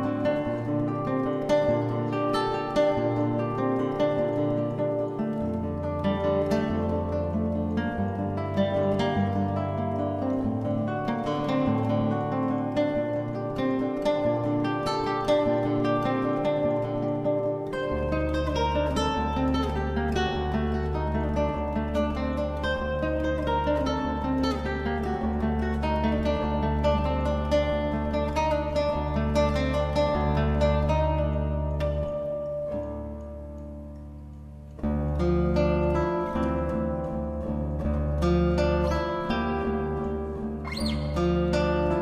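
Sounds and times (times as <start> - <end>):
plucked guitar melody: 0.0 - 42.0.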